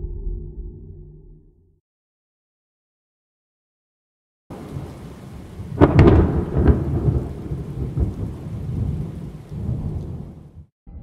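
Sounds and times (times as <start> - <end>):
steady rain: 4.5 - 10.6
rolling thunder rumble: 4.5 - 10.7
thunderclap: 4.5 - 10.7.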